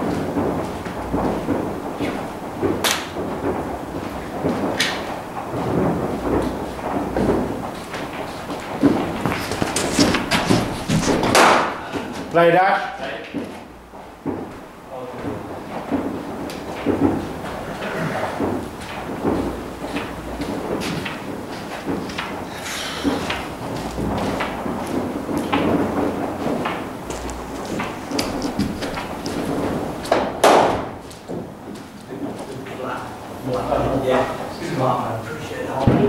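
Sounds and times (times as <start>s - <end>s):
echoing knocks: 0.0s - 36.0s
cricket bat hitting ball: 0.4s - 3.6s, 4.2s - 12.3s, 18.3s - 31.5s
background chatter: 14.7s - 30.1s, 30.8s - 36.0s.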